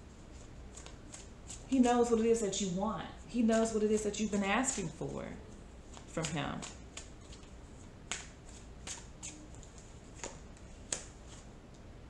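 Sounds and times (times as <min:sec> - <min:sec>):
cards shuffled by hand: 0:00.3 - 0:01.7, 0:05.9 - 0:11.5
cards snapping: 0:08.1 - 0:11.2.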